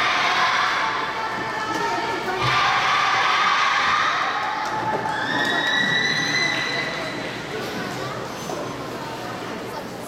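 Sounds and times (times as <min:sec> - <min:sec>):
crowd cheering and shouting: 0:00.0 - 0:07.6.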